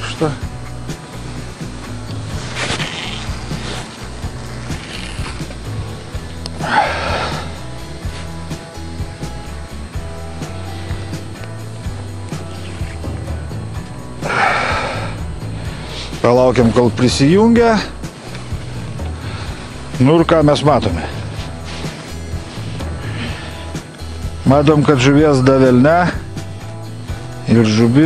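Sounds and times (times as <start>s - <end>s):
music with low held chords: 0.0s - 28.0s.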